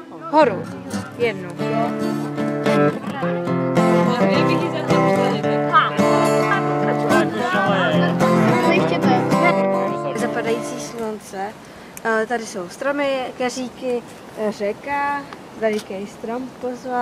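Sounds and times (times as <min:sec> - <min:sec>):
acoustic guitar strumming: 0:00.0 - 0:11.3
children talking: 0:00.0 - 0:17.0.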